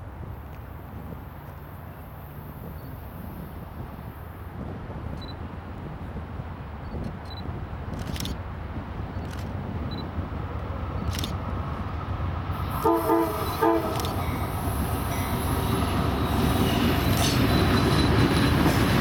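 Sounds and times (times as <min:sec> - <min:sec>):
diesel locomotive engine rumble: 0:00.0 - 0:19.0
locomotive horn: 0:12.7 - 0:14.6.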